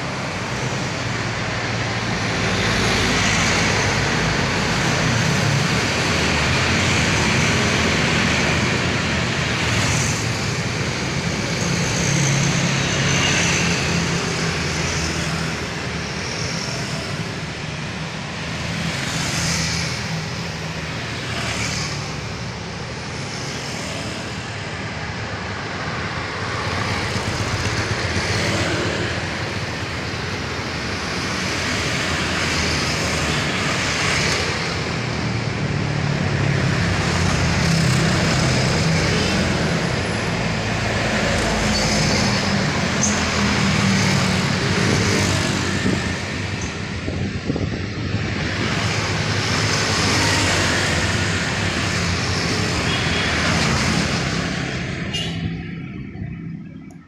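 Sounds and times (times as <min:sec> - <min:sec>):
vehicles driving past: 0:00.0 - 0:57.0.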